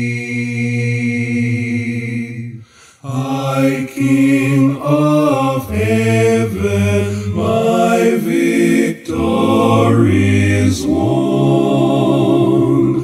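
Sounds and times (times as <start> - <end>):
man singing a cappella harmony: 0.0 - 13.0.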